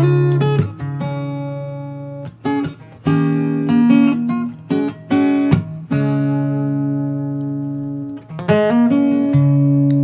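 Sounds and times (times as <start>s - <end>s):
acoustic guitar chords ringing: 0.0s - 10.0s
plucked guitar notes: 0.0s - 10.0s.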